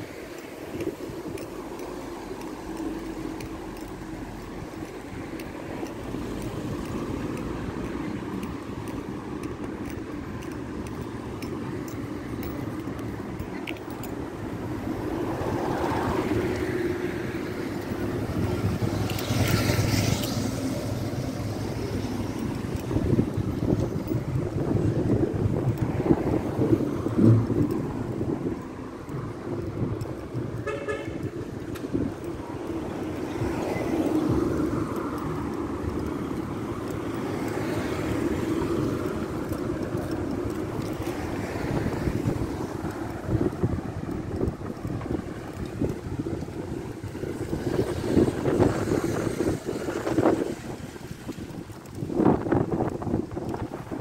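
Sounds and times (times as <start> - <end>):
city street traffic: 0.0 - 54.0
short car horn toot: 30.6 - 31.2.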